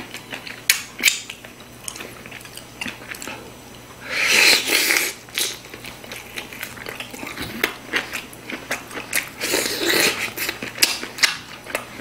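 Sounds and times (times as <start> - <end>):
wet chewing: 4.2 - 12.0.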